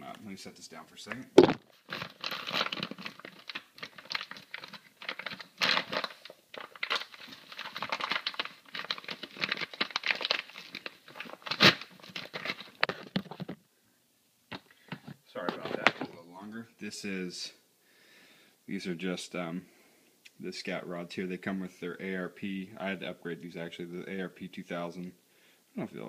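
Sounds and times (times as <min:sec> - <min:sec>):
packaging tearing and crinkling: 0:01.4 - 0:13.5
sharp crack: 0:11.3 - 0:12.8.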